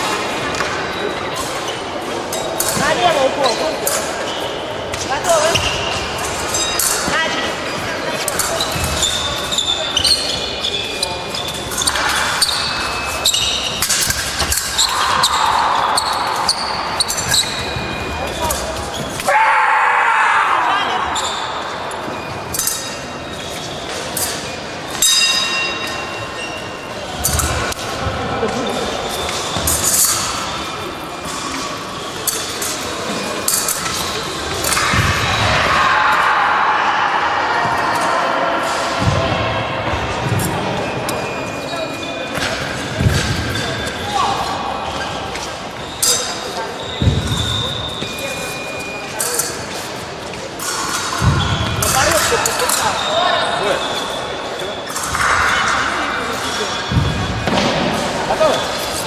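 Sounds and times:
indistinct voices: 0.0 - 59.0.

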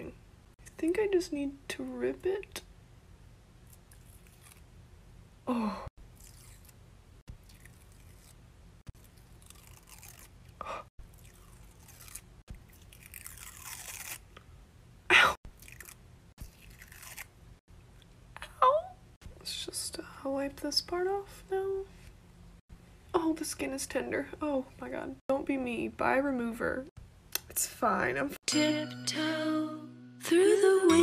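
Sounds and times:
film peeling off skin crackling: 3.7 - 4.7, 6.2 - 8.4, 9.0 - 10.5, 11.2 - 14.3, 15.6 - 17.3.

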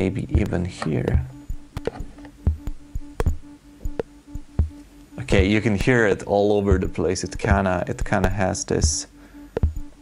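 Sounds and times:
low bass thumps: 0.0 - 10.0
pulsing electronic tone: 0.0 - 10.0
sharp electronic clicks: 0.0 - 10.0.

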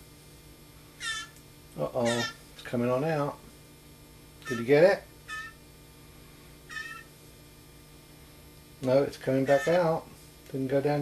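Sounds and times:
blue jay short high calls: 1.0 - 1.4, 2.0 - 2.4, 4.4 - 5.6, 6.7 - 7.1, 9.4 - 9.9.

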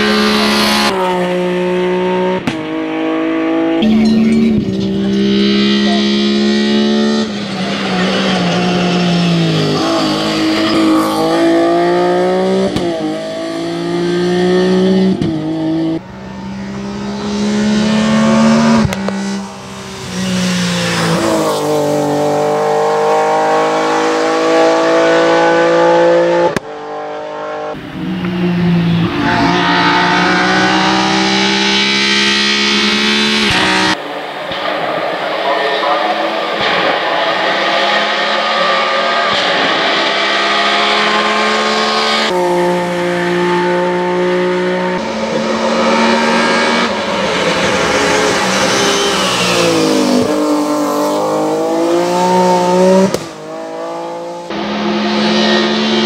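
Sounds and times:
race car engine at high revs: 0.0 - 56.0.

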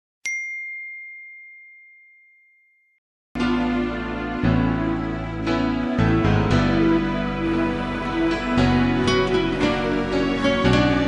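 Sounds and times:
bell ding: 0.2 - 3.0.

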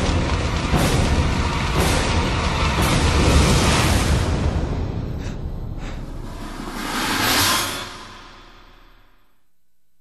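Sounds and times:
drama soundtrack music: 0.0 - 9.4
rushing whoosh: 6.0 - 9.2.

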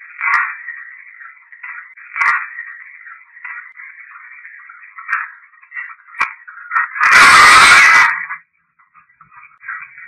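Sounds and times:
tinny garbled recorder playback: 0.0 - 10.0
loud harsh noise burst: 7.0 - 8.3.

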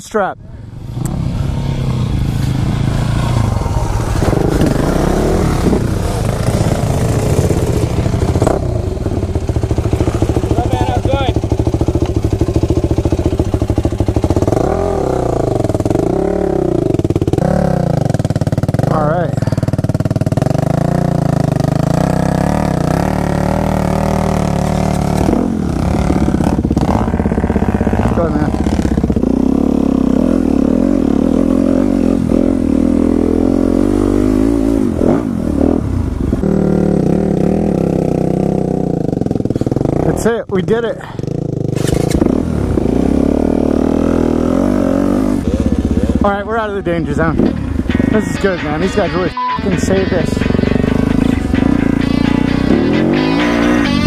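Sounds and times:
dirt bike engine revving: 0.7 - 54.0.

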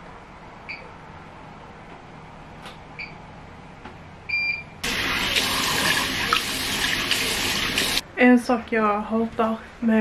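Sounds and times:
washing machine beep: 3.0 - 3.2, 4.3 - 6.4
water rushing into washing machine: 4.8 - 8.0.

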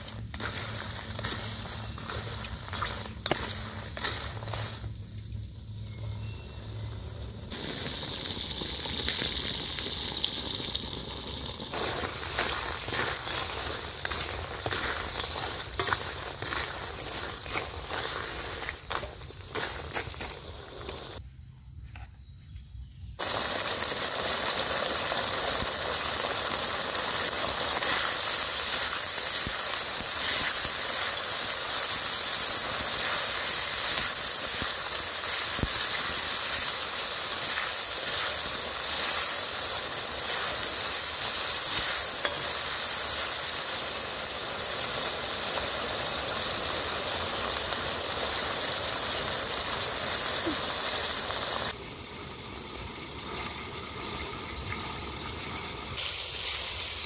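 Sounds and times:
spatula stirring in wok: 0.0 - 5.0, 11.7 - 21.2, 27.5 - 44.0
beetles sizzling in hot oil: 0.0 - 21.2, 23.2 - 57.0.

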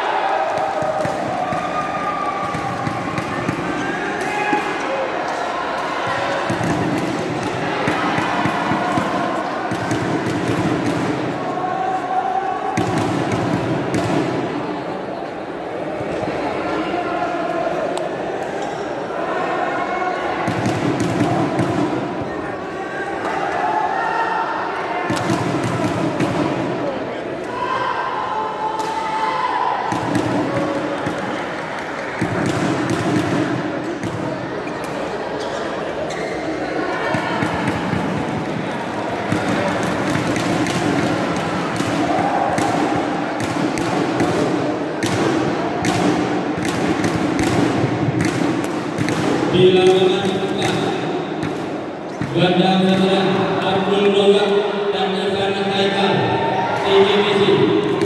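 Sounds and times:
murmur of voices: 0.0 - 58.0
badminton rackets hitting shuttlecock: 39.2 - 52.3.

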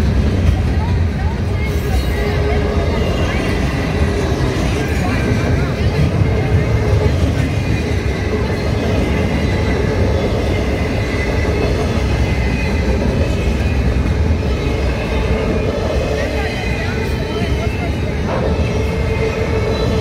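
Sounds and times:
freight train rumbling and rattling: 0.0 - 20.0.

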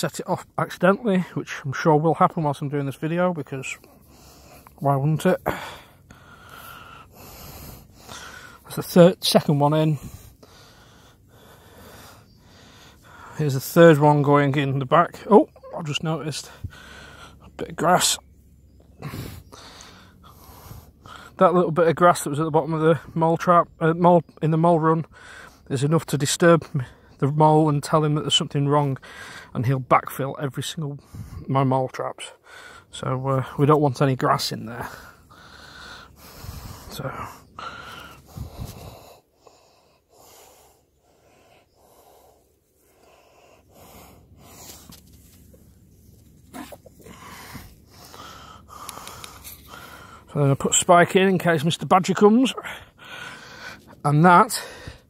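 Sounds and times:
person breathing: 3.8 - 4.8, 5.4 - 8.7, 9.9 - 13.4, 16.5 - 17.6, 19.0 - 21.4, 25.1 - 25.7, 29.0 - 29.5, 32.4 - 32.9, 34.8 - 50.4, 52.6 - 55.0.

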